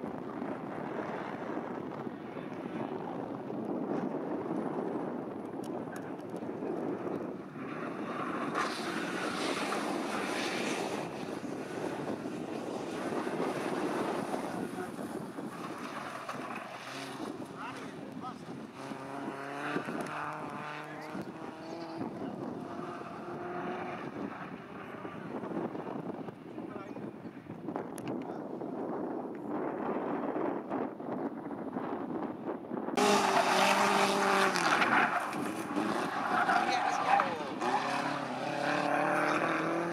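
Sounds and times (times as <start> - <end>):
race car engines: 0.0 - 39.9
people talking: 17.5 - 18.5, 36.4 - 37.8, 38.9 - 39.9.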